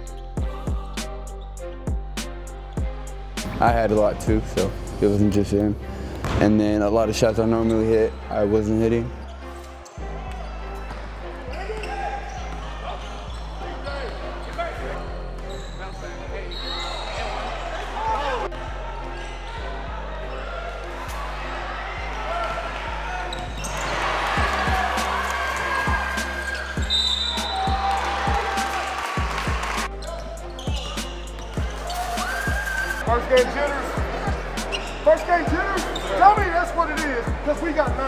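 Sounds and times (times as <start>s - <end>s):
background music with bass line: 0.0s - 15.5s, 17.2s - 38.0s
sneaker squeaks: 7.4s - 17.7s, 23.2s - 28.8s, 29.7s - 36.5s.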